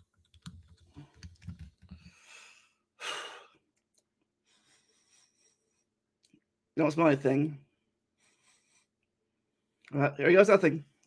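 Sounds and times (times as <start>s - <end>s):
faint breath: 2.0s - 3.6s, 4.4s - 6.0s, 8.2s - 9.1s.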